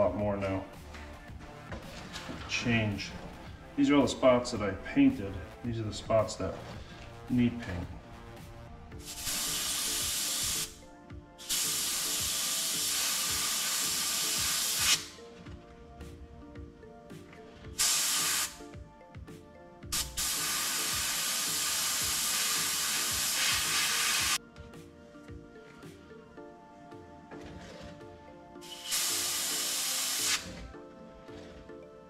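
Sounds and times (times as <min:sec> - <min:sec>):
airbrush spraying hiss: 0:09.0 - 0:10.8, 0:11.4 - 0:15.2, 0:17.8 - 0:18.7, 0:19.9 - 0:24.4, 0:28.6 - 0:30.6.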